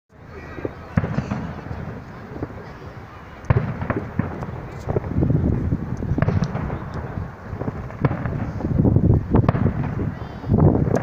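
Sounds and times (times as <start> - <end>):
fireworks banging: 0.1 - 11.0
fireworks popping: 0.2 - 11.0.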